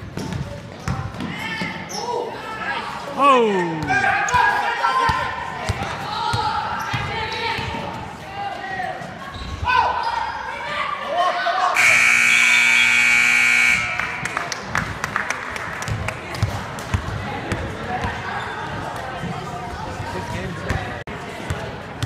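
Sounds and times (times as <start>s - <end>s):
scoreboard buzzer: 11.8s - 14.3s.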